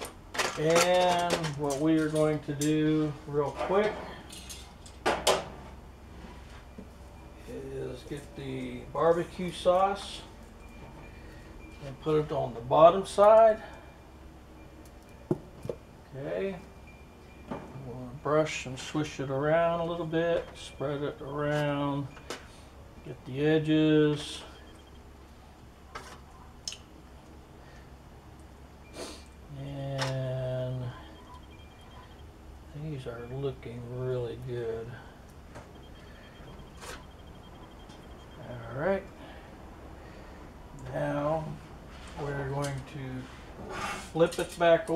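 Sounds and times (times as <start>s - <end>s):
metal tongs clattering on grill: 0.0s - 5.5s
low hum: 1.2s - 44.6s.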